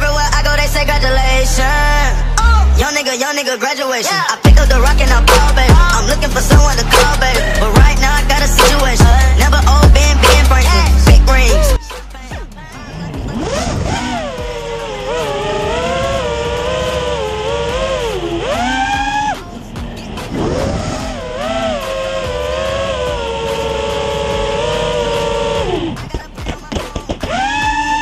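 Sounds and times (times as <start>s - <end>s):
quadcopter motors whining: 4.9s - 28.0s.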